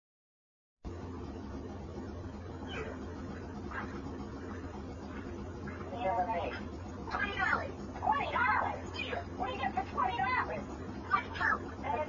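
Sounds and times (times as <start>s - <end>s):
steady low hum and hiss: 0.8s - 12.0s.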